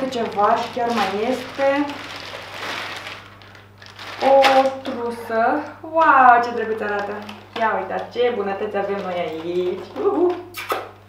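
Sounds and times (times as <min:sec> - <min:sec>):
packaging rustling and crinkling: 0:00.0 - 0:10.5.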